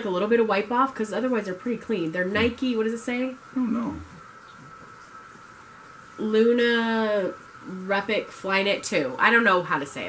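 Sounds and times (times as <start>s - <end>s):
low hiss: 0.0s - 10.0s
thin high-pitched whine: 1.2s - 5.2s.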